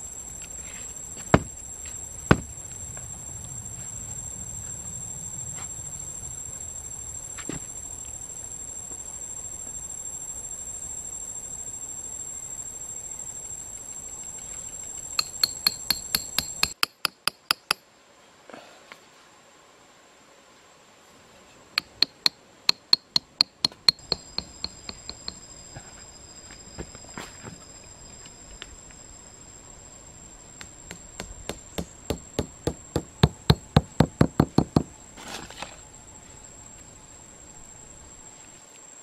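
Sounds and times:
high-pitched insect drone: 0:00.0 - 0:17.7, 0:21.8 - 0:39.0
sharp knocks: 0:21.8 - 0:25.4, 0:30.6 - 0:34.9.

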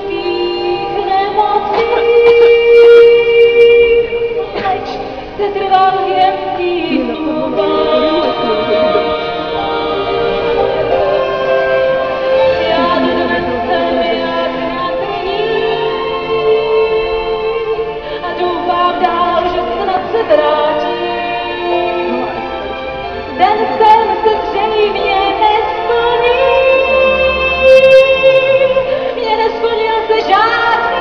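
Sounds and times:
woman singing into microphone: 0:00.0 - 0:11.7, 0:12.3 - 0:22.7, 0:23.3 - 0:31.0
instrumental accompaniment: 0:00.0 - 0:31.0.

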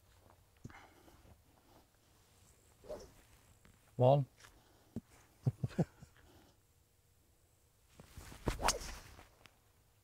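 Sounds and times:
golf club swish: 0:02.8 - 0:03.2, 0:08.0 - 0:09.3.

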